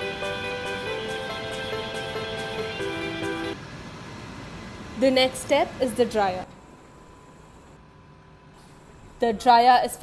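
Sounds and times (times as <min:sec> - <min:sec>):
background music with held notes: 0:00.0 - 0:03.6
conveyor machinery noise: 0:00.0 - 0:07.8.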